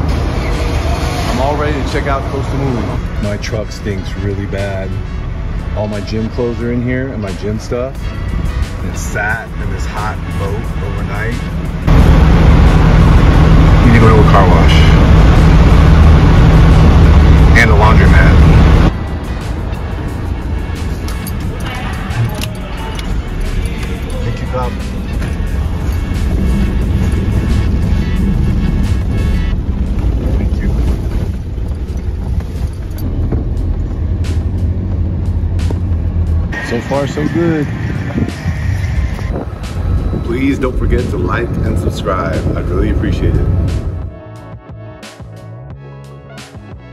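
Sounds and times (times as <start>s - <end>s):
vehicle low hum: 0.0s - 44.2s
vehicle uneven rumble: 0.0s - 44.2s.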